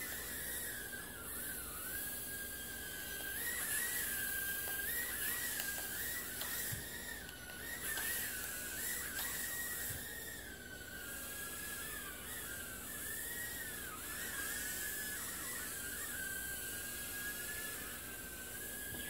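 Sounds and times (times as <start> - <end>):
drone motors whining: 0.0 - 19.0.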